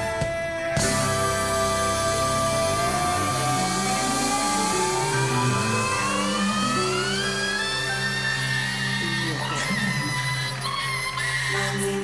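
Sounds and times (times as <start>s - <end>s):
live rock band playing: 0.0s - 4.4s
sustained note sliding upward: 0.8s - 10.4s.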